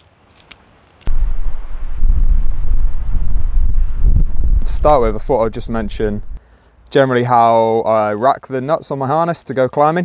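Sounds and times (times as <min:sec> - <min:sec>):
wind buffeting microphone: 0:01.1 - 0:06.4.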